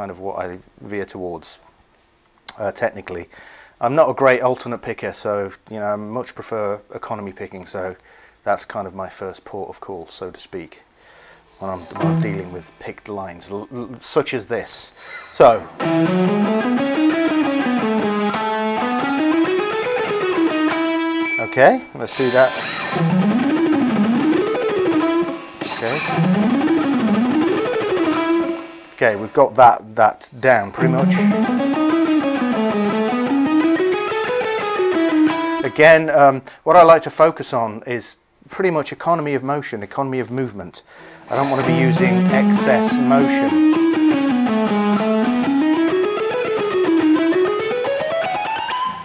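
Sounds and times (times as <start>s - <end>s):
electric guitar picked notes: 11.6s - 12.8s, 15.6s - 29.0s, 30.8s - 35.8s, 41.2s - 49.0s.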